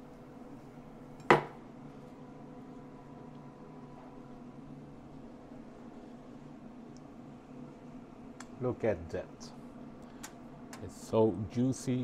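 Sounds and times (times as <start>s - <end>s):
knife knocking on cutting board: 1.3s - 1.6s.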